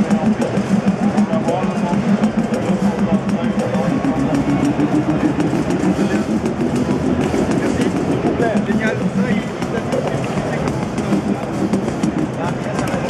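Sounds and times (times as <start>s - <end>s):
buzzy synth line: 0.0s - 13.0s
rapid ticking drum rhythm: 0.0s - 13.0s.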